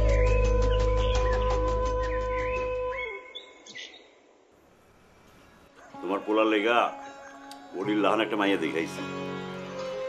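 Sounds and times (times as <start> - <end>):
background music: 0.0 - 3.0, 5.2 - 10.0
faint bird chirps: 0.0 - 4.2.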